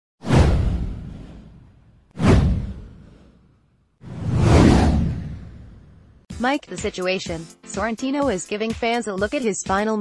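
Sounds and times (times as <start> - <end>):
cinematic whoosh with low boom: 0.2 - 6.3.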